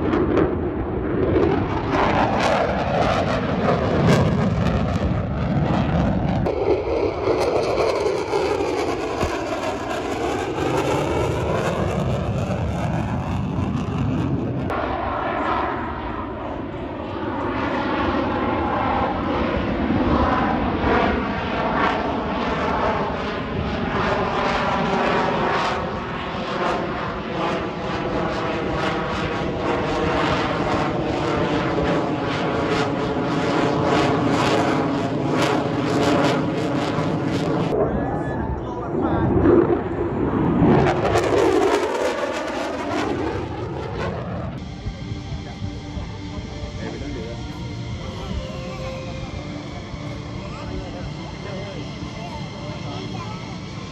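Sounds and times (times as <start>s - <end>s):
fighter jet passing: 0.0s - 53.9s.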